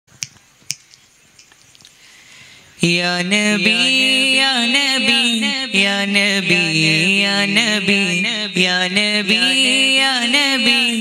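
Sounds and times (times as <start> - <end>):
low background noise: 0.1 - 11.0.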